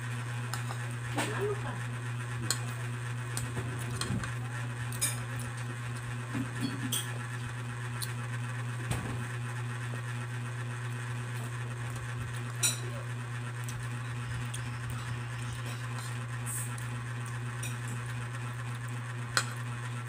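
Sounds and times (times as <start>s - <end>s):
low background hum: 0.0s - 20.0s.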